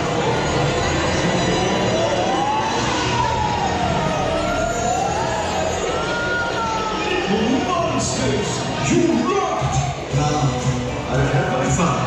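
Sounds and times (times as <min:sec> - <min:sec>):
wavering siren-like tone: 0:00.1 - 0:07.0.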